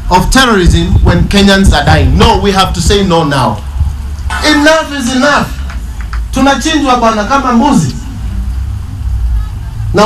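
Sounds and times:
steady low rumble: 0:00.0 - 0:10.0
man speaking: 0:04.3 - 0:05.7, 0:06.3 - 0:08.1.

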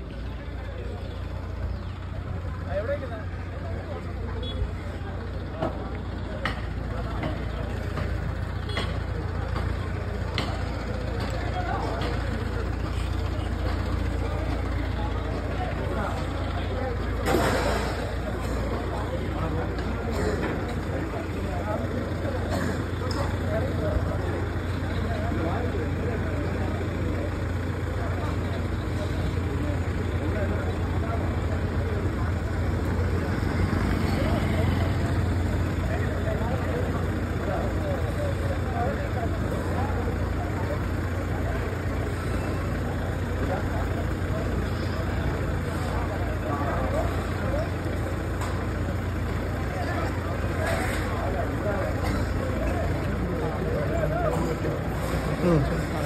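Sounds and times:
crowd talking: 0:00.0 - 0:56.0.

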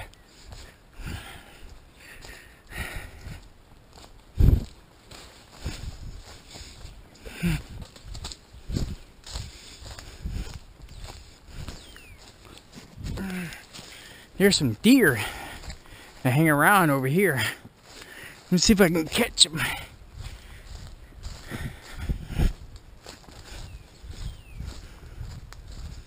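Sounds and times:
footsteps on leaves: 0:00.2 - 0:26.0.

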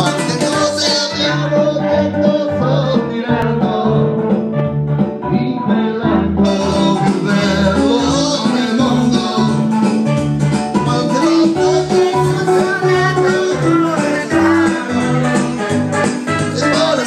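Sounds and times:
people singing into microphones: 0:00.0 - 0:04.3, 0:05.6 - 0:10.0, 0:10.8 - 0:17.0
karaoke backing track: 0:00.0 - 0:17.0.

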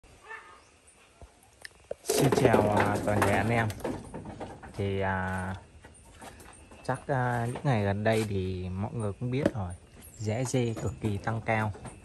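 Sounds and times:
faint animal cry: 0:00.1 - 0:00.8.

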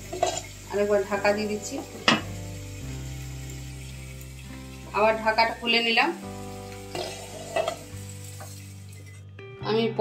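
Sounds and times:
food sizzling in oil: 0:00.0 - 0:09.4.

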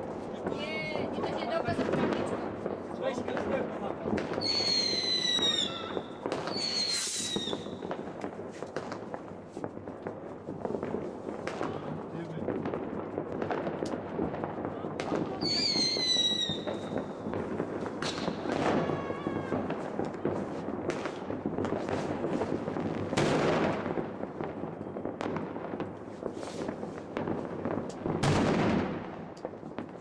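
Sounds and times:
fireworks bangs and crackles: 0:00.0 - 0:30.0
falling firework whistle: 0:04.4 - 0:07.9, 0:15.4 - 0:17.1, 0:18.0 - 0:19.9.

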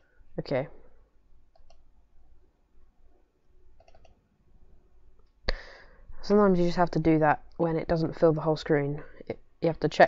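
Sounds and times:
mouse buttons clicking: 0:03.8 - 0:04.2.

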